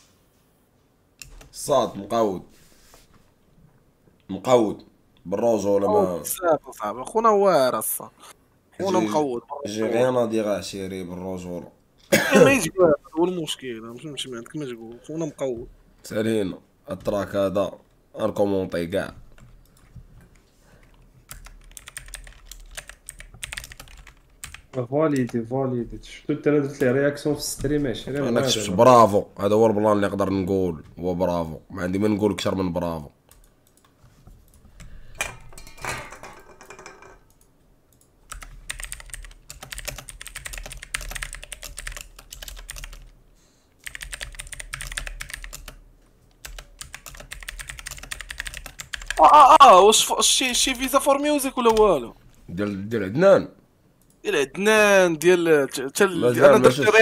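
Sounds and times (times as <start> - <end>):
typing on a computer keyboard: 20.9 - 25.4, 37.3 - 43.1, 43.8 - 45.8, 46.4 - 49.2.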